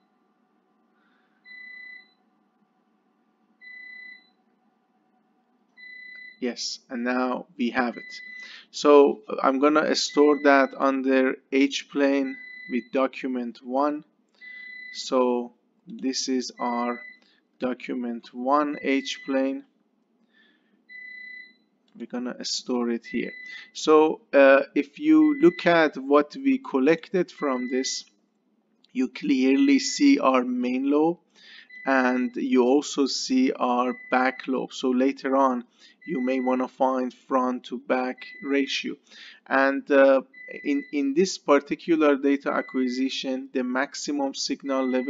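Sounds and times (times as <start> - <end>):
faint steady hum: 0.0 - 45.0
high-pitched electronic beeps: 9.9 - 10.8, 18.6 - 19.5, 25.1 - 25.9, 27.3 - 28.0, 36.0 - 36.6, 44.6 - 45.0.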